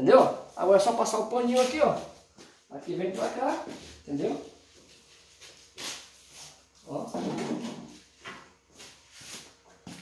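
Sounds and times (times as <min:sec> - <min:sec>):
cloth rag swishing on tiles: 0:01.5 - 0:06.7, 0:08.8 - 0:10.0.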